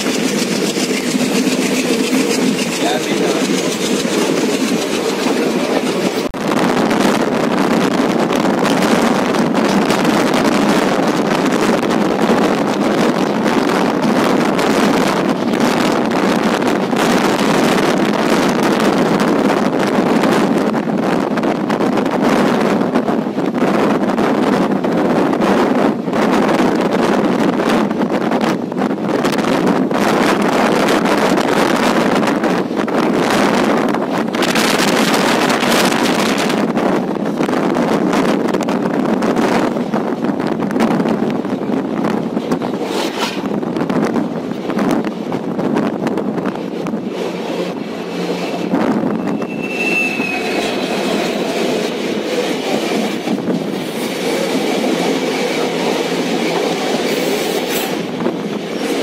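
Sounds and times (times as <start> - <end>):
train wheels rumbling on rails: 0.0 - 59.0
wind buffeting microphone: 0.0 - 59.0.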